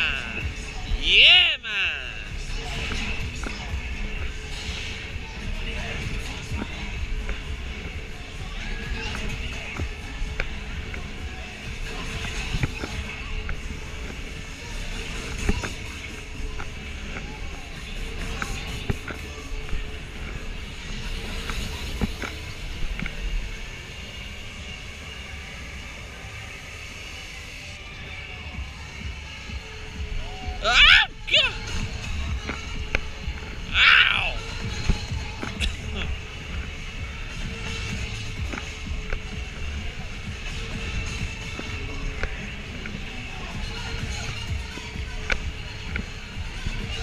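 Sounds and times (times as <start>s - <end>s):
fairground music: 0.0s - 5.8s, 28.6s - 47.0s
rider shouting: 1.0s - 2.2s, 30.5s - 31.6s, 33.7s - 34.4s.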